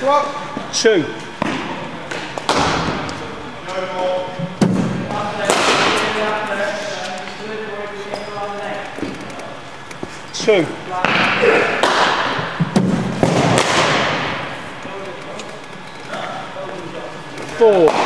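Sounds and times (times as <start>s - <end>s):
cricket bat striking ball: 11.0s - 14.4s.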